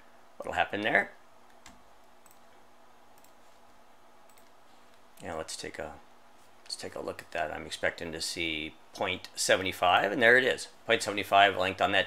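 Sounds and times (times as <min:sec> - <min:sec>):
computer mouse clicks: 0:01.4 - 0:02.6, 0:03.2 - 0:03.4, 0:04.3 - 0:05.0.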